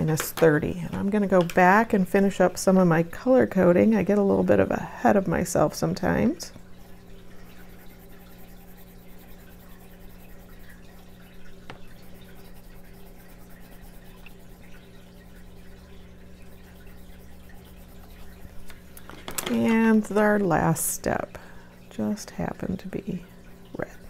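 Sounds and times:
low steady hum: 0:00.0 - 0:24.0
pencil scratching on paper: 0:07.6 - 0:10.6, 0:12.0 - 0:14.2.

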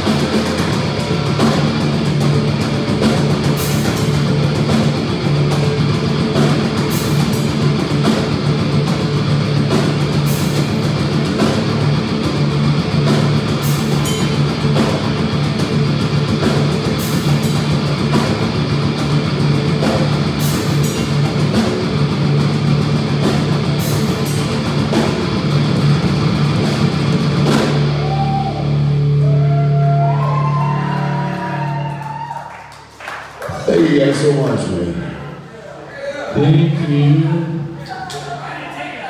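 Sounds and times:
distorted electric guitars: 0:00.0 - 0:32.0
drum kit: 0:00.0 - 0:34.3.

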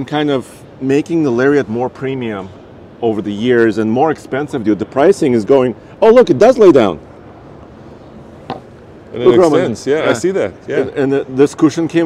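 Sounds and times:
busy exhibition hall noise: 0:01.6 - 0:11.8.

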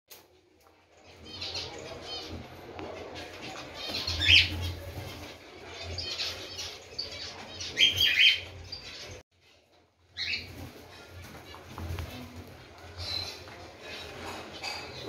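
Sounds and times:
cockatiels chirping: 0:03.1 - 0:09.2.

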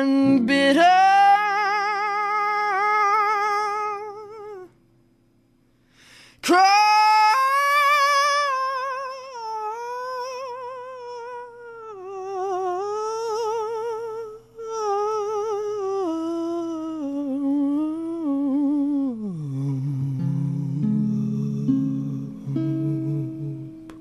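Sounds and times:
man singing with vibrato: 0:00.0 - 0:04.8, 0:06.4 - 0:23.9.

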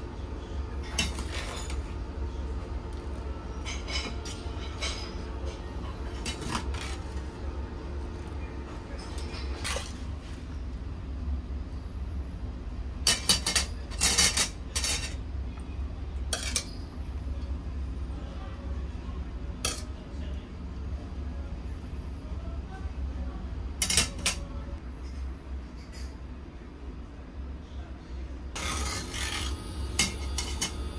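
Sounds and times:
steady low hum: 0:00.0 - 0:13.2, 0:14.5 - 0:30.9.

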